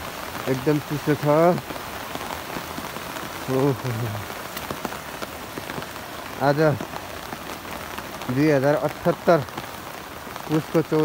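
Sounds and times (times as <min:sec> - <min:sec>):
rain falling on vegetation: 0:00.0 - 0:11.0.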